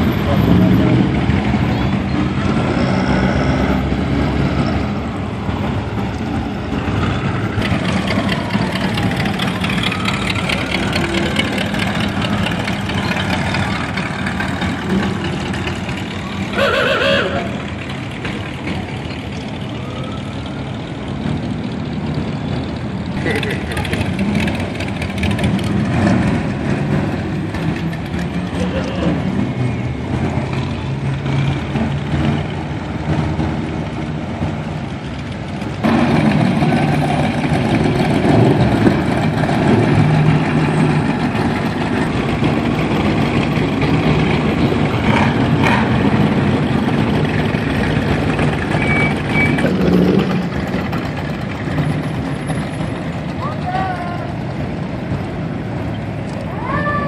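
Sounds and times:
car engines cruising past: 0:00.0 - 0:57.0.

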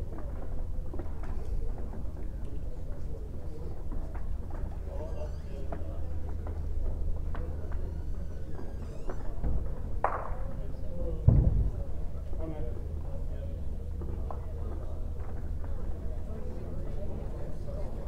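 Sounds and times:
murmur of voices in a hall: 0:00.0 - 0:18.0
steady low hum: 0:00.0 - 0:18.0
low thud: 0:11.2 - 0:12.1.

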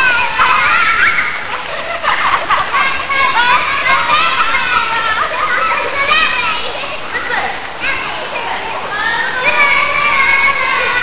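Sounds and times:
children shouting at play: 0:00.0 - 0:11.0.

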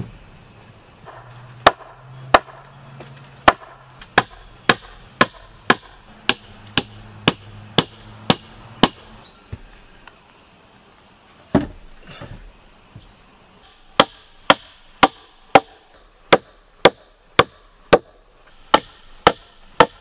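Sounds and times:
hammer striking log roof: 0:01.0 - 0:09.1, 0:13.9 - 0:20.0.

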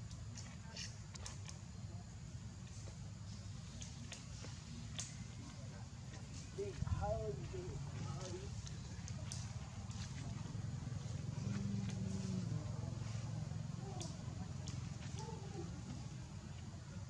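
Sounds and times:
faint voices talking: 0:00.3 - 0:17.0.

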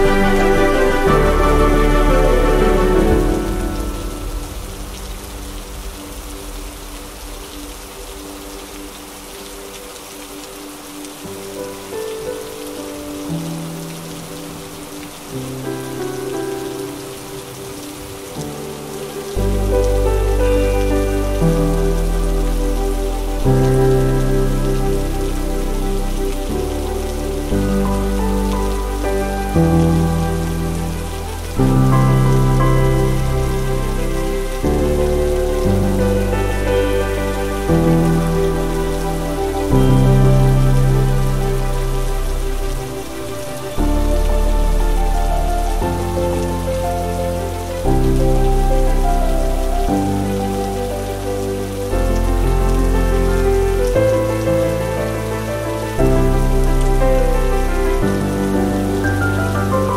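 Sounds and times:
rain on paving stones: 0:00.0 - 0:59.9
soft background music: 0:00.0 - 0:59.9.

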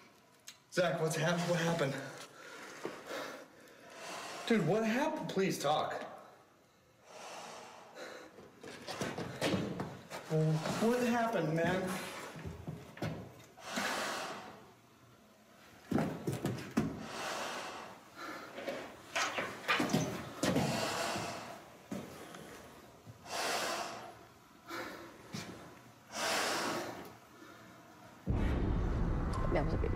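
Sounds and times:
man breathing through respirator: 0:01.2 - 0:04.7, 0:06.6 - 0:08.6, 0:13.6 - 0:14.7, 0:16.8 - 0:18.9, 0:20.4 - 0:27.9.

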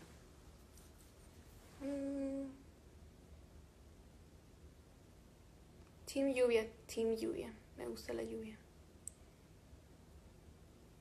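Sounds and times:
woman humming: 0:01.8 - 0:02.7.

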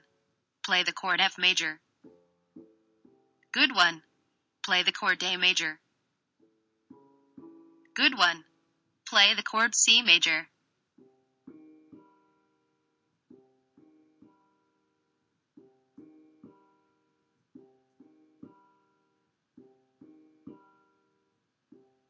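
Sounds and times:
quiet keyboard notes: 0:00.0 - 0:22.0.

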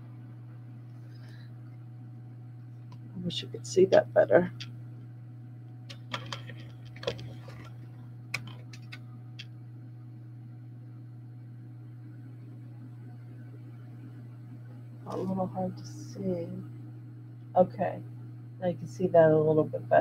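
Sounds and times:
low electrical hum: 0:00.0 - 0:20.0.

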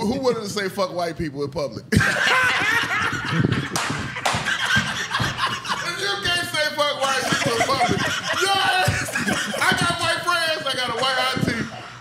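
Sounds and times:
man laughing heartily: 0:01.9 - 0:12.0.

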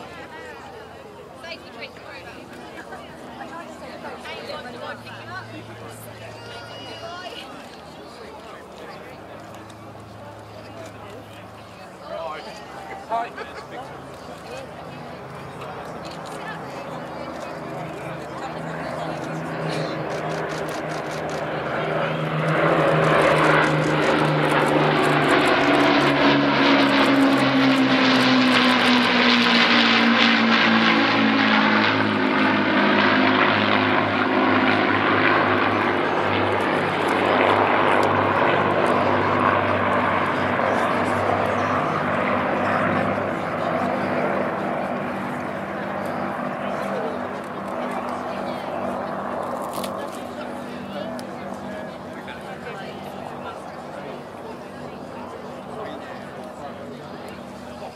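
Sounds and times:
piston aircraft engines droning: 0:00.0 - 0:57.9.

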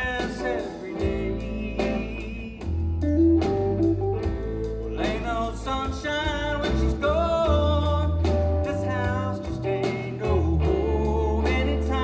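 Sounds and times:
live band playing slow blues: 0:00.0 - 0:12.0.

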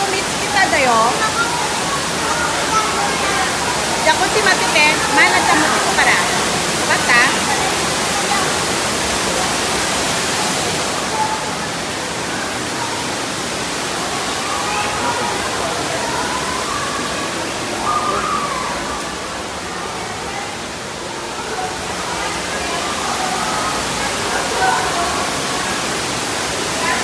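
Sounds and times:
faint voices: 0:00.0 - 0:27.0
waterfall rushing: 0:00.0 - 0:27.0.

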